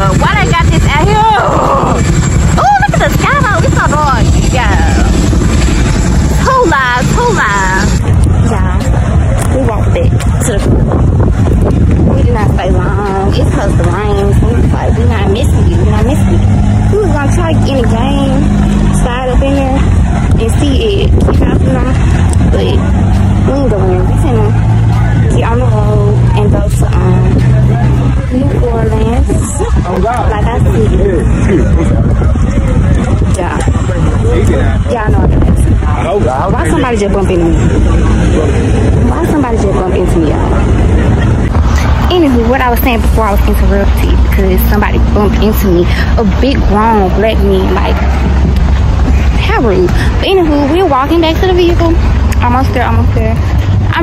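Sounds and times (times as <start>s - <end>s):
helicopter rotors beating: 0.0s - 54.0s
sustained low bass: 0.0s - 54.0s.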